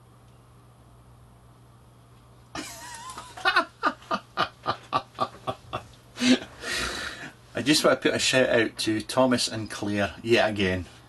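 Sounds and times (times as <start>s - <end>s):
man laughing: 2.6s - 6.5s.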